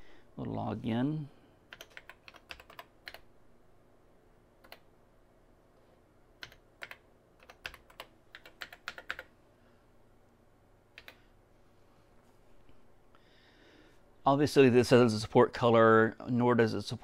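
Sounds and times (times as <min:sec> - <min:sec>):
computer keyboard keystrokes: 0:01.7 - 0:03.3, 0:04.6 - 0:04.9, 0:06.4 - 0:09.3, 0:11.0 - 0:11.2.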